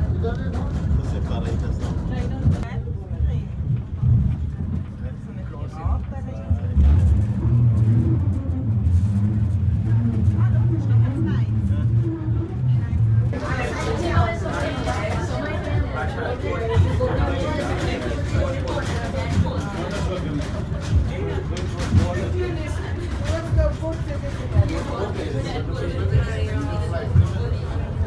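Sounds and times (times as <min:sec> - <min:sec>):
funicular car rumbling on rails: 0:00.0 - 0:28.0.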